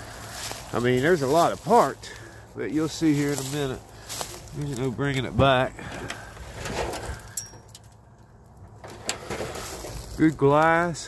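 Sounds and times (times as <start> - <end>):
footsteps through dry leaves: 0.0 - 5.4, 9.4 - 10.6.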